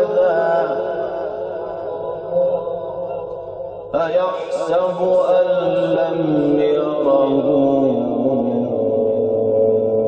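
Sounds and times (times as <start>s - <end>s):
man reciting in long melismatic note: 0.0s - 10.0s.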